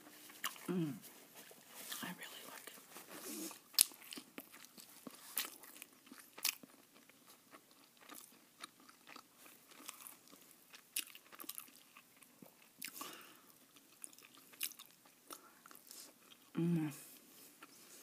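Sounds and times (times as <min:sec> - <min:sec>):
chewing with soft crunches: 0:00.0 - 0:18.0.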